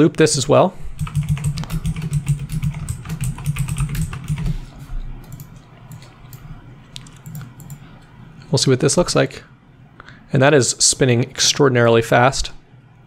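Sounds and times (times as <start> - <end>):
typing on computer keyboard: 1.0 - 4.6, 7.1 - 7.8.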